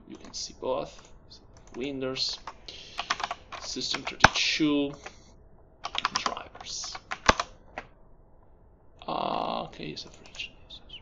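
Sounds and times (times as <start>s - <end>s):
computer keyboard keys clacking: 2.9s - 5.2s, 5.9s - 7.5s.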